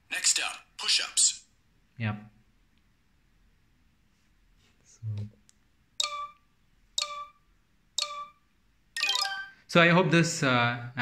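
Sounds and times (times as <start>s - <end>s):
short bright chime beeps: 9.0s - 9.6s.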